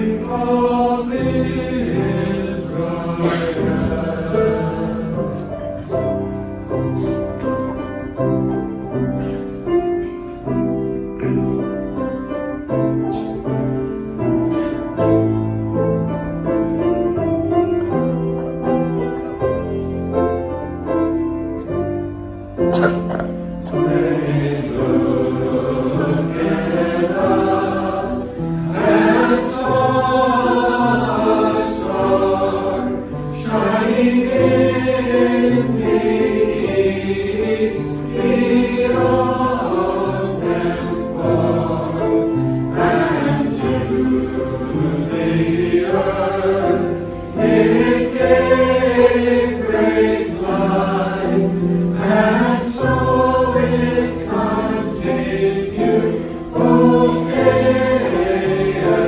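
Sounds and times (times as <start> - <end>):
mixed choir singing carol: 0.0 - 15.6, 22.7 - 59.0.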